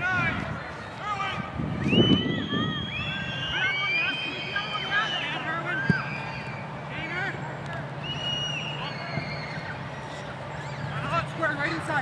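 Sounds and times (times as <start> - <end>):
low background hum: 0.0 - 12.0
players shouting: 2.4 - 12.0.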